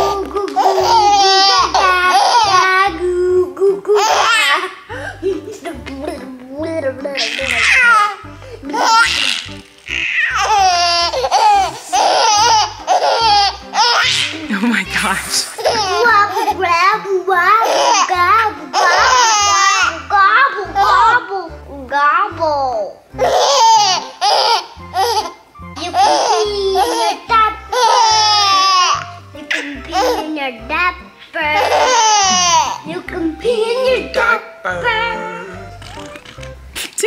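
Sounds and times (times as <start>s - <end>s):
baby giggling and squealing: 0.0s - 2.8s, 7.2s - 14.5s, 15.2s - 16.6s
baby laughing: 0.0s - 21.2s, 23.2s - 30.4s, 31.5s - 33.0s
background music with low beat: 31.7s - 37.0s.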